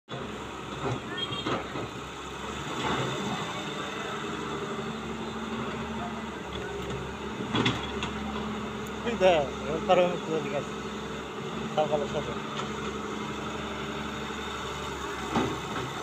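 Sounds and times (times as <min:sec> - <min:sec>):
excavator diesel engine running: 0:00.1 - 0:16.0.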